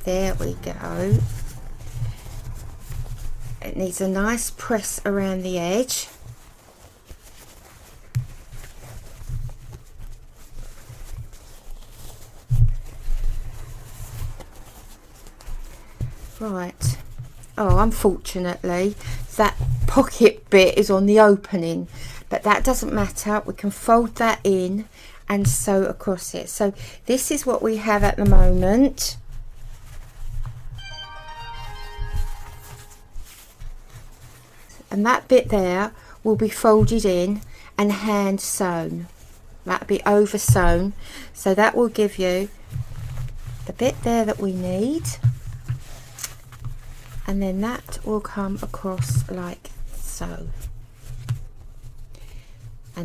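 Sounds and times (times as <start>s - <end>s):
soft low bumps: 0.0s - 3.8s
fabric handling: 0.0s - 53.0s
descending chime: 30.8s - 33.4s.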